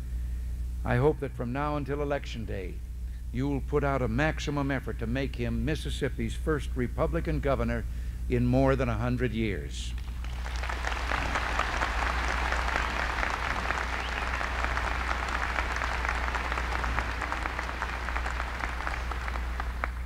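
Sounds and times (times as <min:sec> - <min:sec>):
large audience applauding: 0:10.0 - 0:20.0.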